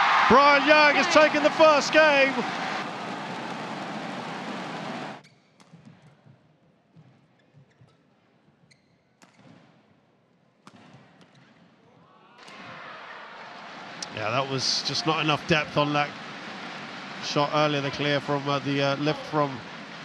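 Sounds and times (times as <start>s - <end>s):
crowd cheering and clapping: 0.0s - 5.2s, 12.4s - 20.0s.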